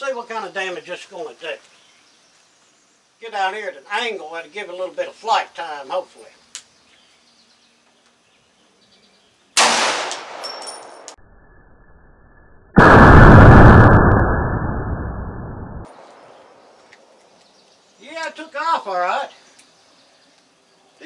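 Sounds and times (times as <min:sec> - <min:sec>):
pistol shot: 0:09.6 - 0:11.1
deep slowed-down boom: 0:12.8 - 0:15.9.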